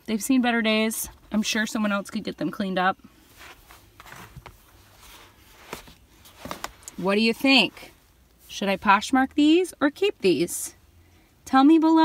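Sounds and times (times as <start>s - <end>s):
faint rustling: 3.0s - 9.0s
soft scuffs of feet into shoes: 3.2s - 8.0s.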